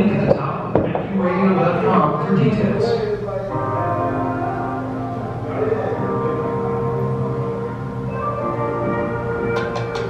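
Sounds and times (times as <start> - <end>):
sustained chords music: 1.1 - 10.0.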